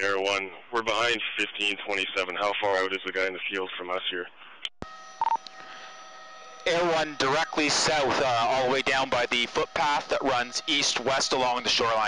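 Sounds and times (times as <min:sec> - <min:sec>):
radio hiss: 0:00.0 - 0:04.6, 0:05.2 - 0:12.0
faint radio tones: 0:00.0 - 0:12.0.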